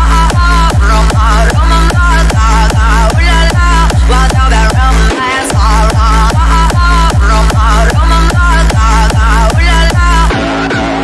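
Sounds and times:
pounding kick drum: 0:00.0 - 0:11.0.

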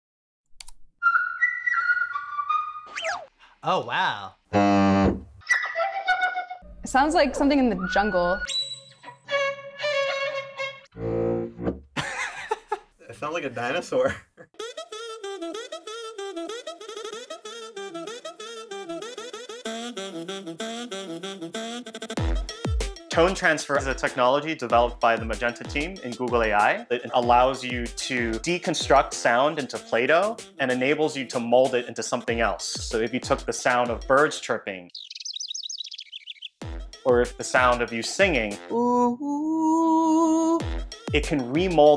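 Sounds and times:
synthesized flute-like tone: 0:01.0 - 0:03.3
synthesized saxophone-like melody: 0:04.5 - 0:05.1, 0:10.8 - 0:11.6, 0:14.6 - 0:24.2.

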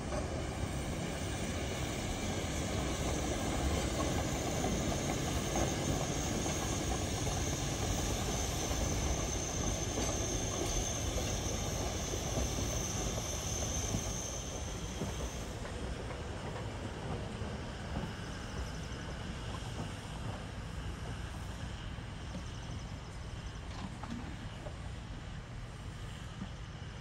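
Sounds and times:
steam locomotive rumbling: 0:00.0 - 0:27.0.

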